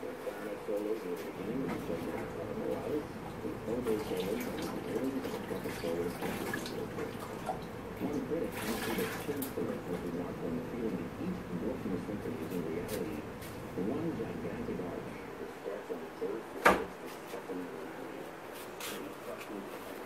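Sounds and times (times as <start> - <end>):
water sloshing in plastic bucket: 3.8 - 7.7, 8.5 - 9.6.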